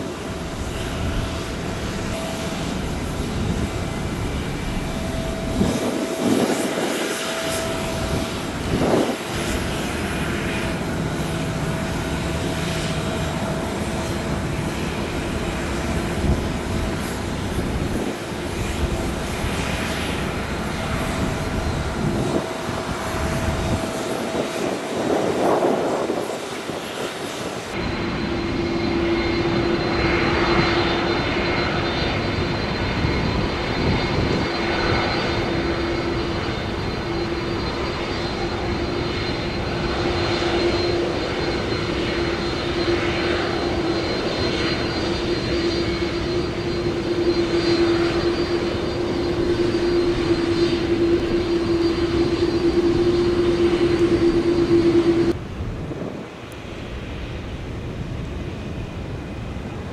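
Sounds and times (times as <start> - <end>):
jet engines humming: 0.0 - 59.9
jet engines whining: 0.0 - 59.9.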